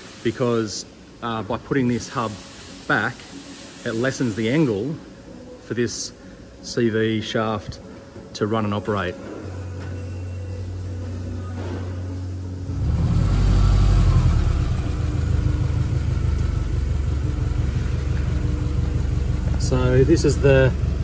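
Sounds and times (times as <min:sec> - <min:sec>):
steady low hum: 0:10.4 - 0:21.0
car engine idling: 0:12.7 - 0:21.0.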